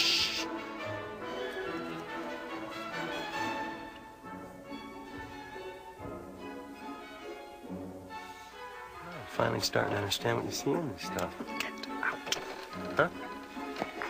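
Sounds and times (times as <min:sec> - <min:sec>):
orchestral music sustained notes: 0:00.0 - 0:14.0.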